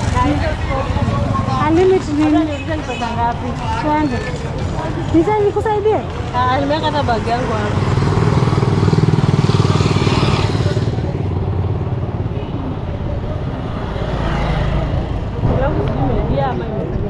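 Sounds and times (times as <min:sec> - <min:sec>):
street noise: 0:00.0 - 0:17.0
motorcycle engine passing: 0:06.5 - 0:12.3.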